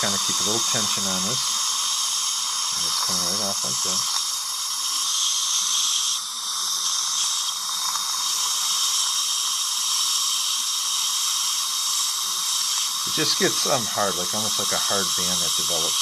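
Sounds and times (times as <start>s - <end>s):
dental suction hissing: 0.0s - 16.0s.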